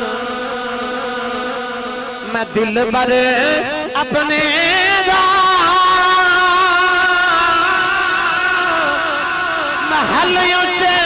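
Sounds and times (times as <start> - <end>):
man singing a long note: 0.0 - 11.0.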